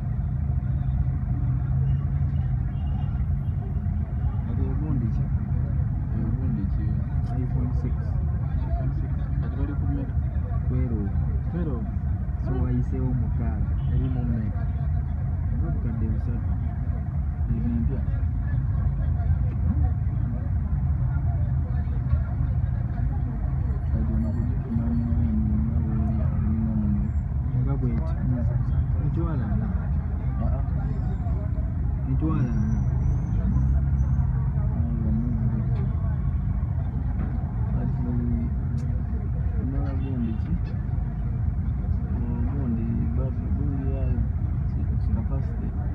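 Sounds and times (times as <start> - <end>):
idling vehicle engines: 0.0 - 45.9
indistinct voices: 17.4 - 45.9.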